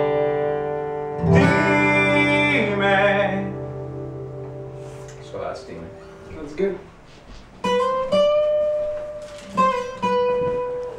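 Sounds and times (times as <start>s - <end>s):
acoustic guitars ringing: 0.0s - 10.9s.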